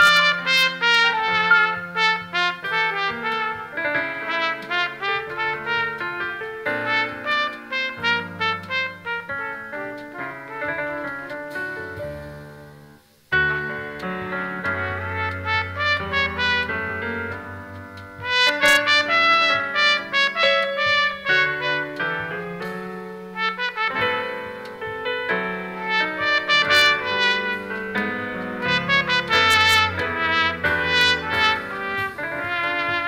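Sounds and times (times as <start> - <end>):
trumpet melody: 0.0 - 12.6, 13.3 - 33.0.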